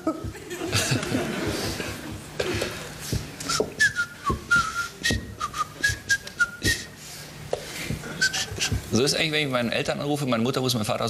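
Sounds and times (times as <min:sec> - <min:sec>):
man whistling a tune: 0:03.4 - 0:07.0, 0:08.2 - 0:08.8.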